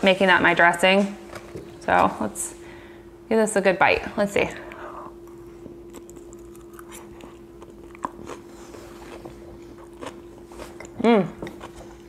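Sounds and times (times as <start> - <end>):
low steady hum: 0.0 - 12.0
person chewing crunchy salad: 5.2 - 12.0.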